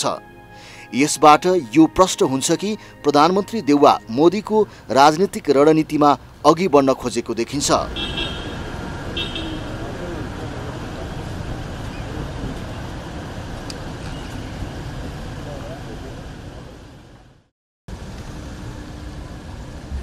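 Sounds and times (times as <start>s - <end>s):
traffic noise: 2.7s - 20.0s
faint voices: 9.0s - 12.8s.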